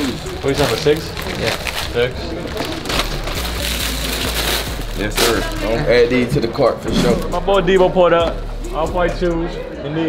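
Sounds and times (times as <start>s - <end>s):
plastic bags rustling and crinkling: 0.0s - 6.1s.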